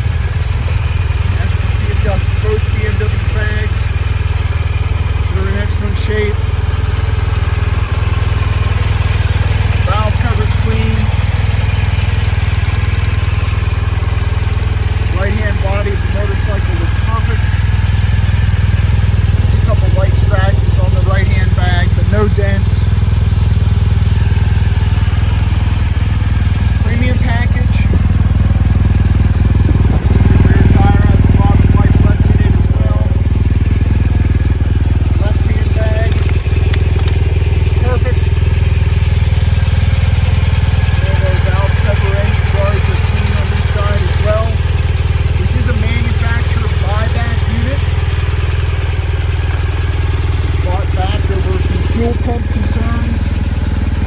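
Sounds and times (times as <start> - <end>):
motorcycle engine idling: 0.0 - 54.0.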